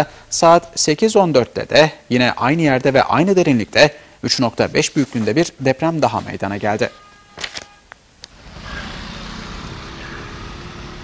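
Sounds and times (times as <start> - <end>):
cars driving along road: 8.3 - 11.0.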